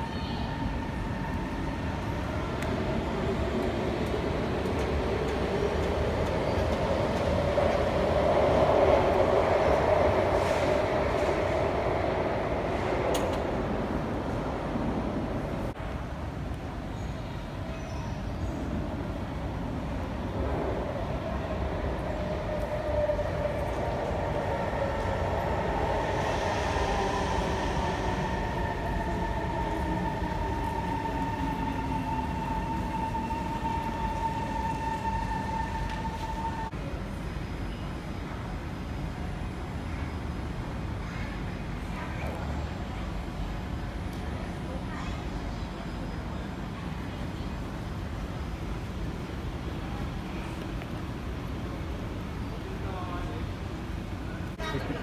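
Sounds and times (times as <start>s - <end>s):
train pulling into platform: 0.0s - 55.0s
train rail rumble with motor whine: 18.0s - 55.0s.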